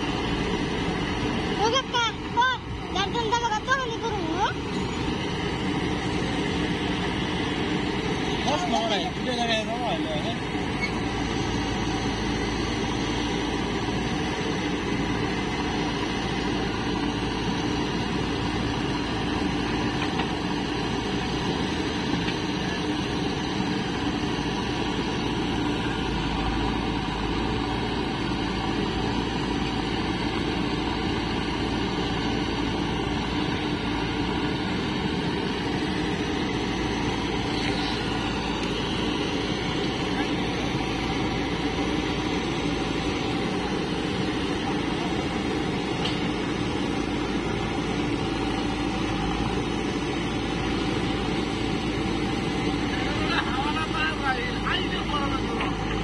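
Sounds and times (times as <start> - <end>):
diesel engines running: 0.0 - 56.0.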